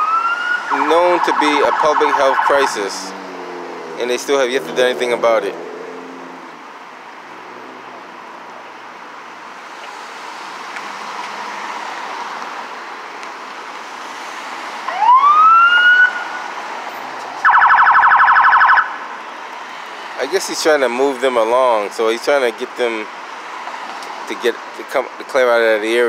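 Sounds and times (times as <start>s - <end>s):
police siren whoop: 0.0s - 2.8s, 14.9s - 16.5s, 17.4s - 19.0s
street noise: 0.0s - 26.0s
siren pulsing warble: 17.4s - 19.0s.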